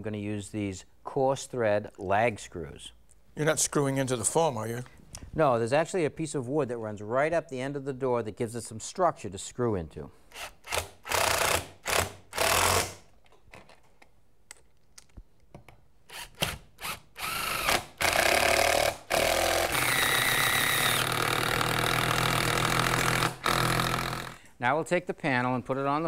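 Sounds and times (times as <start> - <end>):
impact driver driving screws: 10.3 - 13.1, 16.1 - 24.4.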